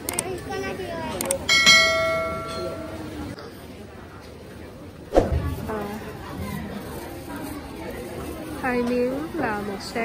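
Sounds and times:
busy market murmur: 0.0 - 10.0
loud thump: 5.2 - 5.6.

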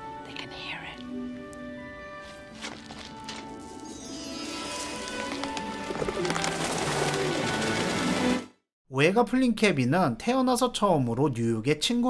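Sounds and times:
film score music: 0.0 - 8.6
pigeons flapping wings: 5.1 - 8.5.

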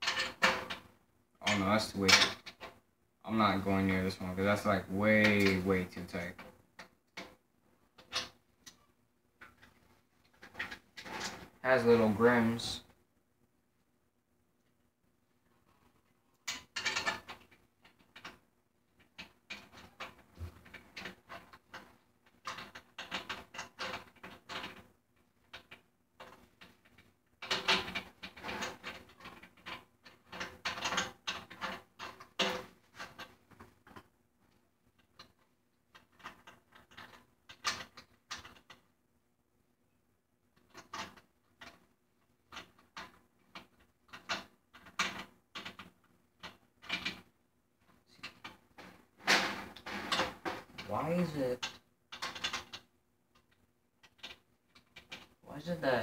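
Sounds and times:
snare drum hardware clicking and rattling: 48.2 - 52.8.

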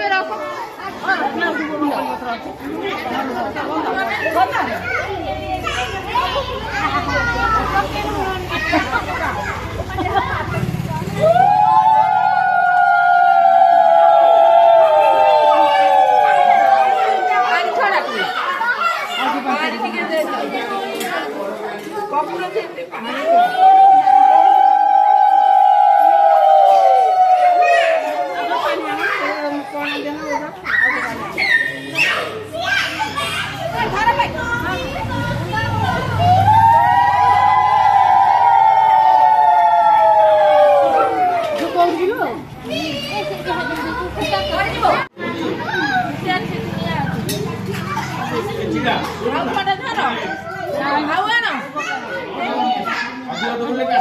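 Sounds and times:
people talking at once: 0.0 - 54.0
women ululating: 10.5 - 18.3, 23.1 - 29.0, 36.1 - 41.9.

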